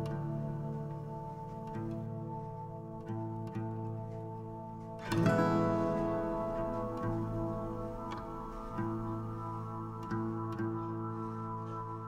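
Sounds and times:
plucked guitar slow notes: 0.0s - 12.0s.

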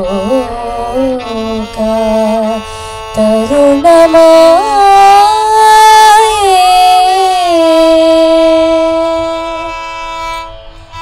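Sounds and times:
woman singing long note: 0.0s - 9.7s.

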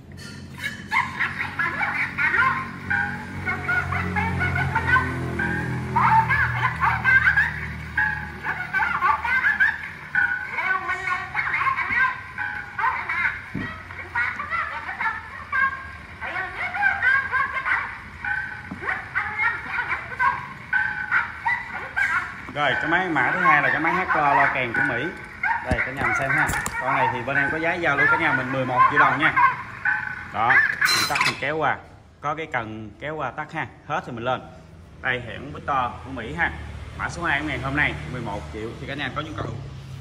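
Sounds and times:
tinny gramophone music: 0.8s - 31.3s.

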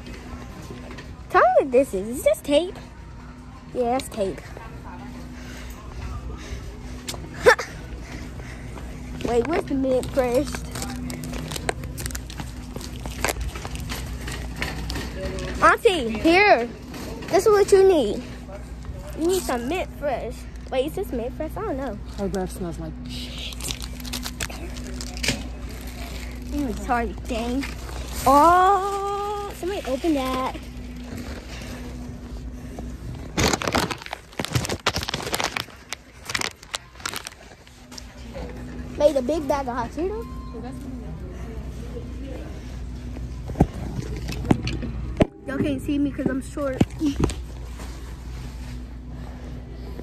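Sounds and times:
low background rumble: 0.0s - 50.0s.

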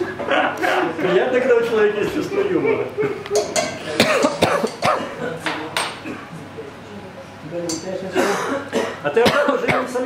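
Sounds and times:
people chuckling: 2.3s - 5.4s
glassware clinking: 3.4s - 5.0s, 7.7s - 8.0s.

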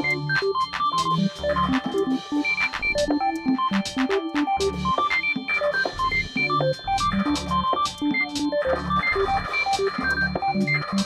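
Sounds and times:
electronic music: 0.0s - 11.0s.

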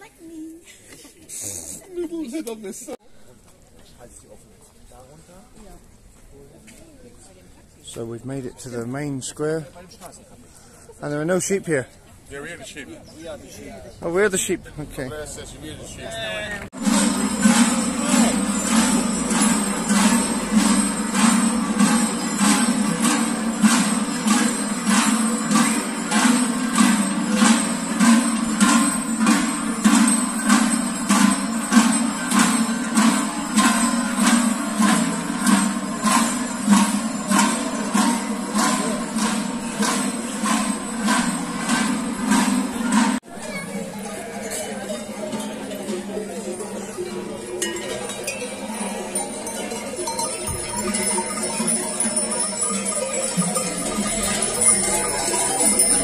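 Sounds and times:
cowbells clanking: 16.8s - 56.0s.

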